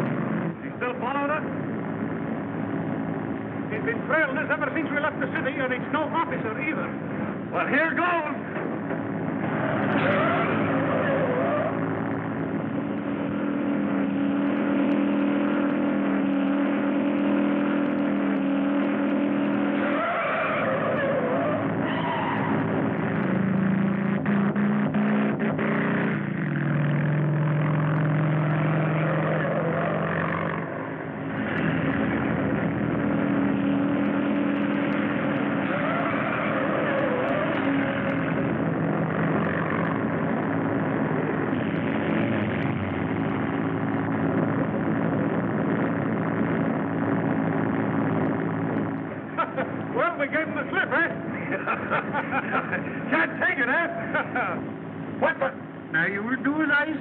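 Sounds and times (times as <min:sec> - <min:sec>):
motorcycle and truck engines: 0:00.0 - 0:57.0.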